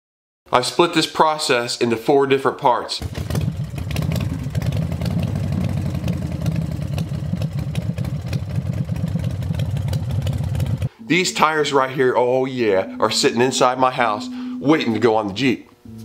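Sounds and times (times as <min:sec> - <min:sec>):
engine idling: 0:03.0 - 0:10.9.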